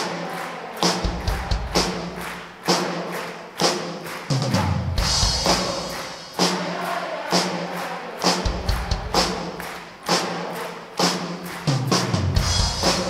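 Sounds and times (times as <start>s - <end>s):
band backing music: 0.0s - 13.0s
heavy percussion beat with cymbal: 0.8s - 13.0s.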